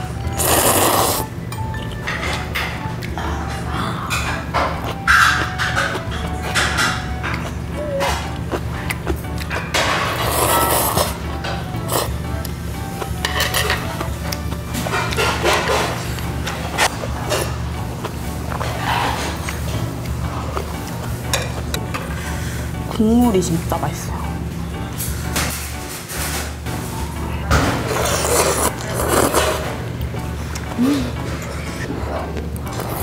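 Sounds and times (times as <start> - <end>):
background music with low beat: 0.0 - 33.0
slurping: 0.4 - 1.3, 10.1 - 11.2, 27.8 - 29.8.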